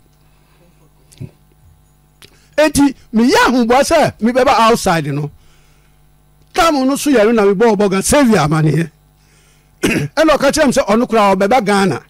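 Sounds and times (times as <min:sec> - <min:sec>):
person talking: 0:02.6 - 0:05.4, 0:06.5 - 0:08.9, 0:10.0 - 0:12.0.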